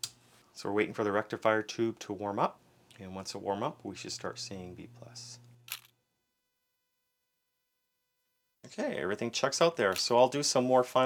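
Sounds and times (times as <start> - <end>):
steady low hum: 0.1 - 6.7
man speaking: 0.6 - 5.4, 8.6 - 11.0.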